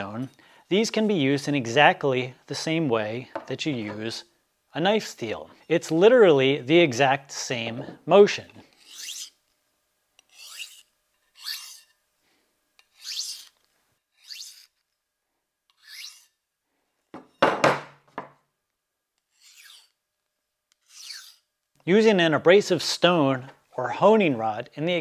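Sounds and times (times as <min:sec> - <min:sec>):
knife scraping on sharpener: 0:08.7 - 0:09.4, 0:10.2 - 0:12.0, 0:12.8 - 0:14.8, 0:15.7 - 0:16.4, 0:19.2 - 0:20.0, 0:20.7 - 0:21.5
loud knock: 0:17.2 - 0:18.3.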